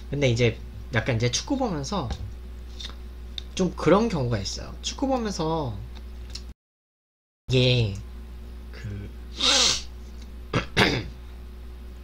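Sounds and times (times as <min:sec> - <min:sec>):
man's breathy vocal bursts: 0:09.3 - 0:09.9.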